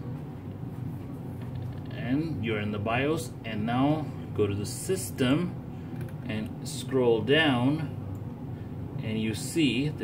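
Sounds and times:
computer fan hum: 0.0 - 10.0.

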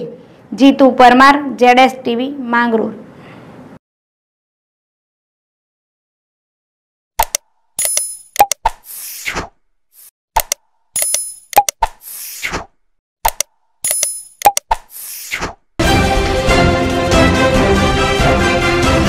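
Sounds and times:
sharp clicks: 7.2 - 8.8, 10.4 - 12.0, 13.2 - 15.0
theme music: 15.8 - 19.0.

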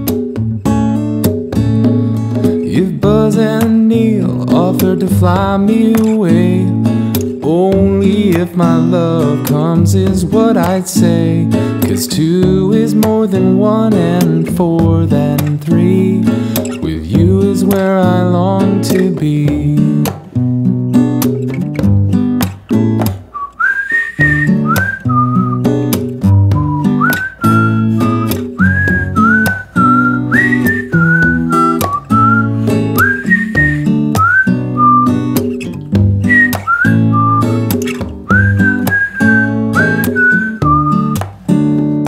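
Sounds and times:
strummed acoustic guitar: 0.0 - 42.0
whistled melody: 23.3 - 41.2.

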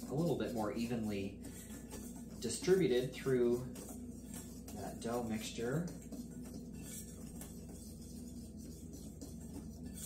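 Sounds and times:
whisk stirring flour in glass bowl: 0.0 - 10.0.

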